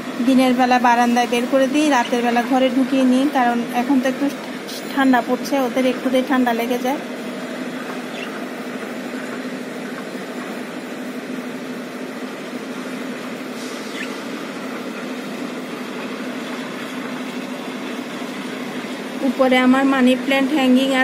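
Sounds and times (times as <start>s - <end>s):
steady mechanical hum: 0.0s - 21.0s.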